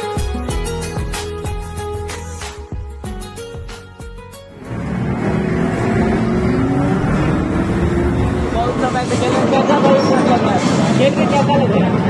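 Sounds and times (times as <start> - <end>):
motorcycle engine sound effect: 4.5 - 9.6.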